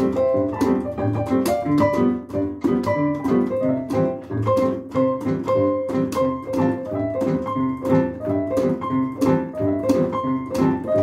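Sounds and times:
boogie-woogie piano: 0.0s - 11.0s.

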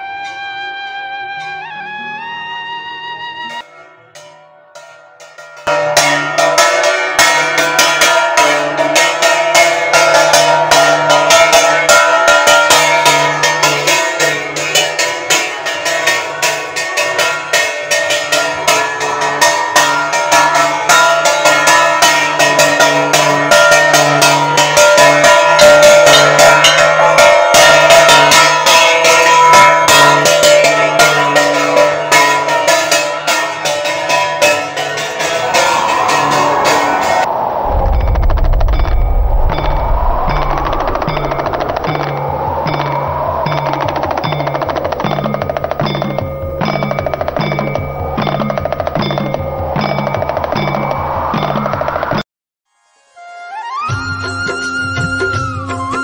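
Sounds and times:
temple bells clanging: 3.7s - 52.0s
drumming: 35.0s - 52.2s.

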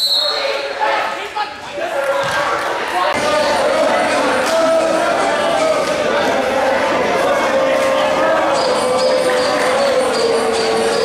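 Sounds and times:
players shouting in a hall: 0.0s - 11.0s.

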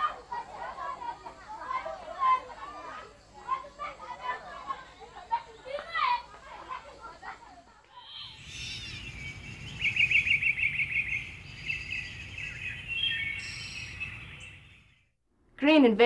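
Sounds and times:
low outdoor background: 0.0s - 16.0s
birds chirping: 8.0s - 15.1s
bird rapid trill: 8.1s - 15.0s.

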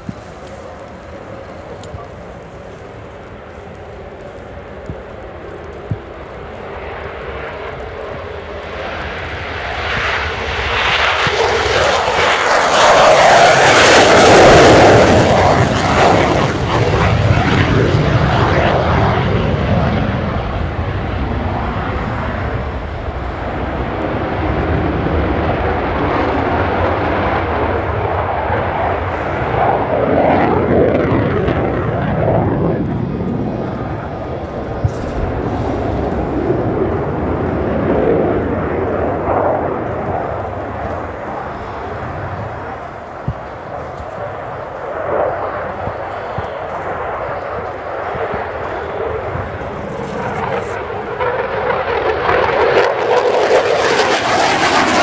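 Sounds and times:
jet engine in full afterburner: 0.0s - 55.0s.

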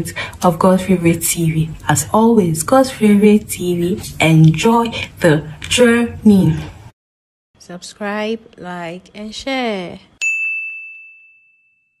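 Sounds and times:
bell-like ding: 10.2s - 12.0s.

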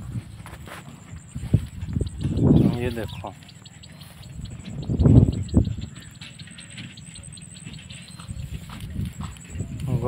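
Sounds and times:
wind buffeting microphone: 0.0s - 10.0s
rapid high ticking: 1.0s - 10.0s.

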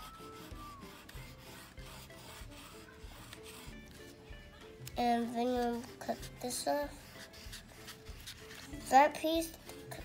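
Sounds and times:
crayon scratching on paper: 0.0s - 4.2s, 5.1s - 10.0s.

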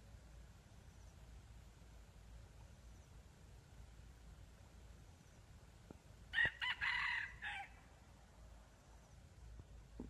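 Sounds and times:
rooster crowing: 6.3s - 7.8s.

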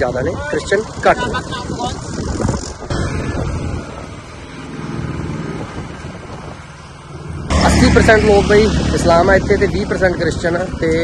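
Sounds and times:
vehicle engine passing: 0.7s - 11.0s.

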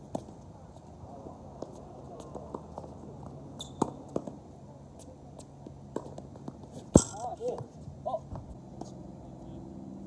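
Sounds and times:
tennis ball bouncing: 3.6s - 4.4s, 5.6s - 7.7s
racket hitting tennis ball: 5.9s - 7.6s.

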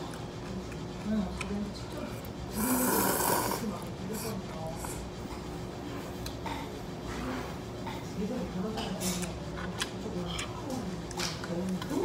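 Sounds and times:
man slurping noodles: 2.5s - 3.6s.

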